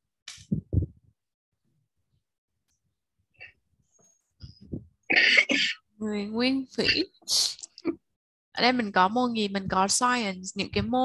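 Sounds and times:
person coughing: 0:05.1 - 0:05.8.

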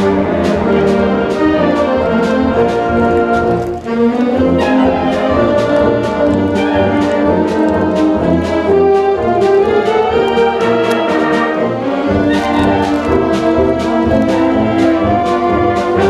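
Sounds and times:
concert band playing: 0:00.0 - 0:16.0
percussion strokes: 0:00.0 - 0:16.0.

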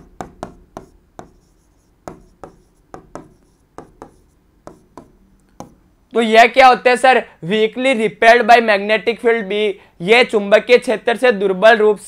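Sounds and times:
stylus tapping on a screen: 0:00.0 - 0:05.8.

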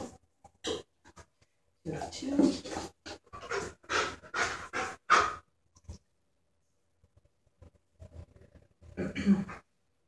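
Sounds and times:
dog panting: 0:02.4 - 0:05.5.

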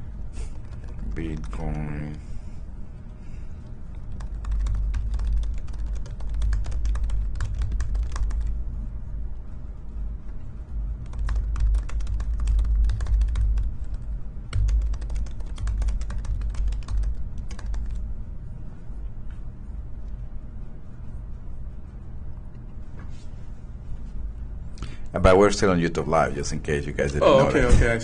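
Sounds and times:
typing on a computer keyboard: 0:03.9 - 0:08.6, 0:11.0 - 0:18.0.

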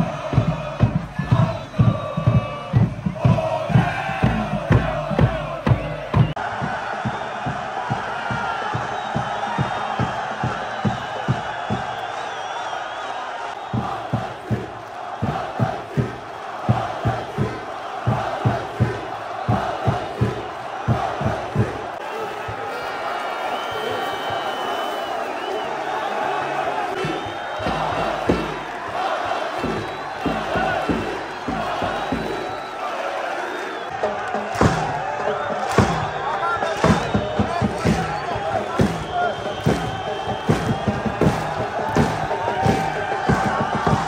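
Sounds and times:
bass drum beating: 0:00.0 - 0:12.0, 0:27.0 - 0:32.6, 0:36.8 - 0:44.0
crowd chanting and cheering: 0:00.0 - 0:44.0.

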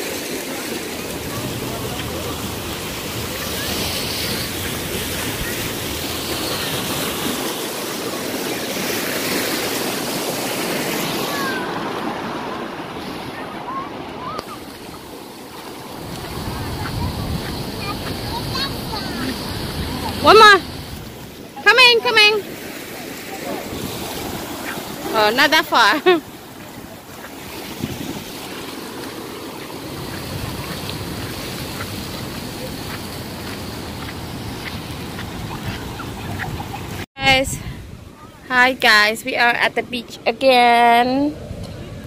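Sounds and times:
surf splashing over concrete: 0:00.0 - 0:42.0.

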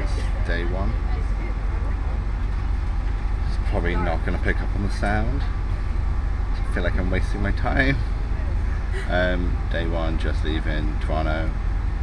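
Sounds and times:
bus engine idling: 0:00.0 - 0:12.0.

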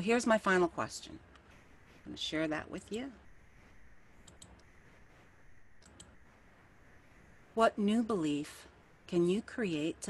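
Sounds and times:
low room hiss: 0:00.0 - 0:10.0
computer mouse clicks: 0:04.2 - 0:04.7, 0:05.8 - 0:06.2.

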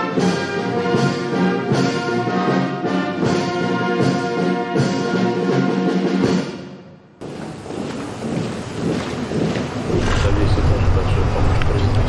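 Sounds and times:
military brass band music: 0:00.0 - 0:10.2
even background noise: 0:07.1 - 0:12.0.

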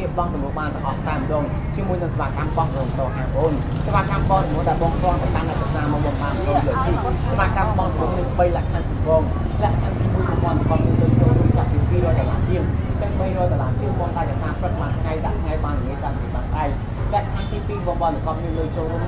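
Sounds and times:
people talking: 0:00.0 - 0:19.0.

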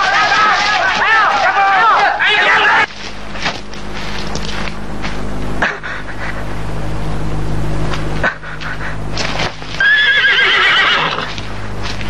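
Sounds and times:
steady low hum: 0:00.0 - 0:12.0
horse whinnying: 0:09.8 - 0:11.4.

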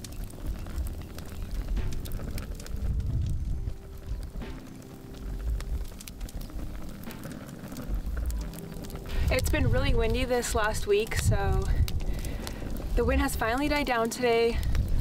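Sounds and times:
low rumble: 0:00.0 - 0:13.9, 0:14.5 - 0:15.0
campfire crackling and popping: 0:00.0 - 0:15.0
soft background music: 0:00.0 - 0:15.0.

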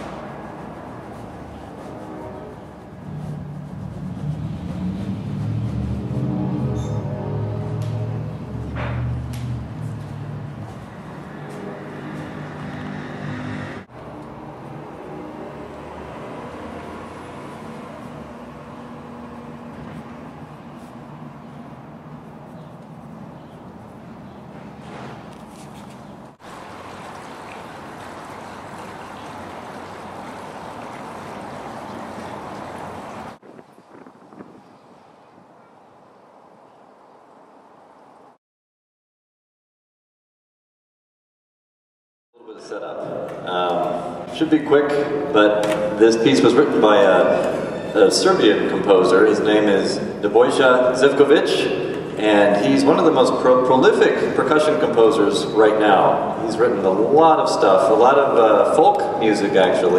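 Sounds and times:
steady rushing background noise: 0:00.0 - 0:06.9.

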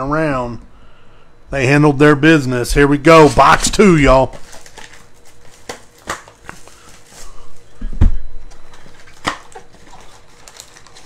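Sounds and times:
plastic shrink-wrap crinkling: 0:04.1 - 0:07.7, 0:08.7 - 0:11.0.

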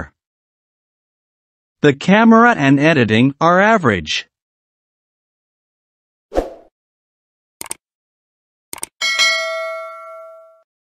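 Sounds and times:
notification bell ding: 0:09.0 - 0:10.7.

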